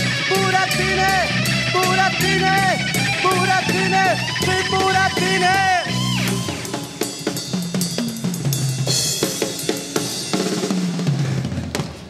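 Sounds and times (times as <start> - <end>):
electric bass guitar line: 0.0 - 7.6.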